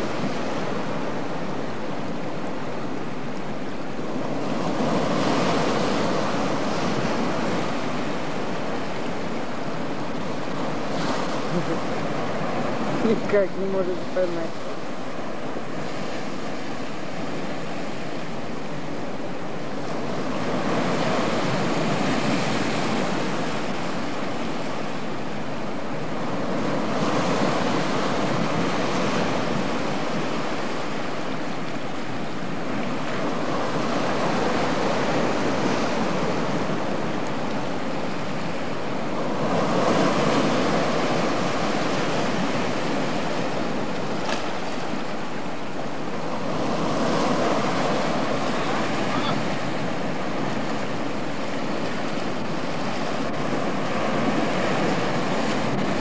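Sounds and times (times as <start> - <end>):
sea surf breaking: 0.0 - 56.0.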